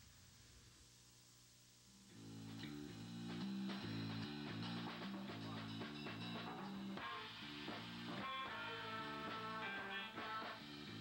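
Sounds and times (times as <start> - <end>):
small band playing: 3.2 - 11.0.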